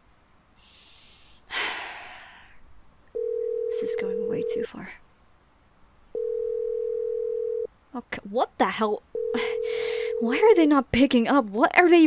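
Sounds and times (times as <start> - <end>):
telephone ringback tone: 3.2 - 4.6, 6.2 - 7.7, 9.2 - 10.3.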